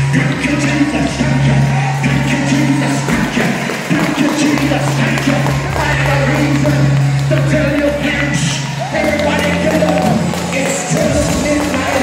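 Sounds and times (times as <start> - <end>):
low instrumental chords: 0.0 - 12.0
congregation clapping in time: 1.8 - 12.0.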